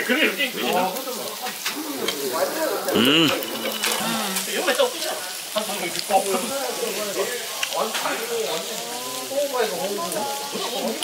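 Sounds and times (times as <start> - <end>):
beef sizzling on a grill plate: 0.0 - 11.0
voices in background: 0.0 - 11.0.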